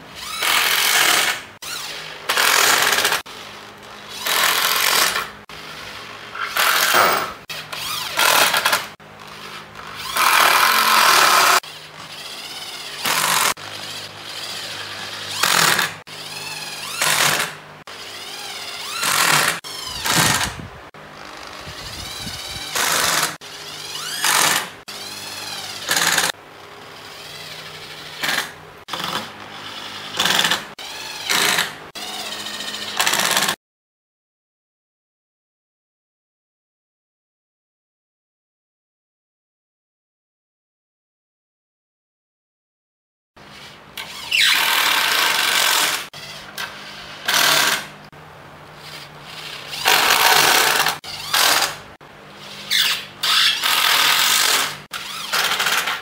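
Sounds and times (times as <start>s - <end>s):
electric drill driving screws: 0.2s - 20.6s, 21.2s - 33.6s, 43.5s - 48.0s, 48.8s - 56.0s.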